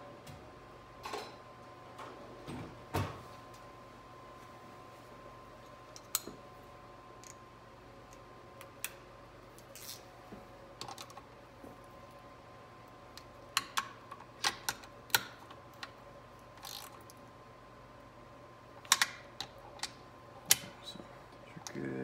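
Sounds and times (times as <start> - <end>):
faint steady hum: 0.0 - 22.0.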